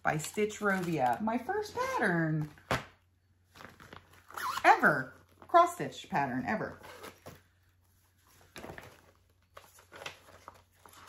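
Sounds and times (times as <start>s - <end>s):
plastic bag rustling: 0.0s - 2.7s, 3.4s - 4.4s.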